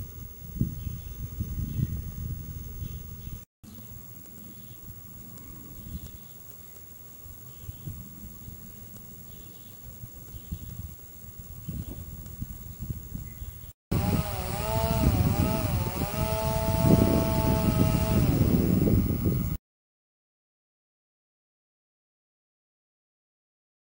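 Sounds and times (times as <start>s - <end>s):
small motor running: 13.9s - 19.6s.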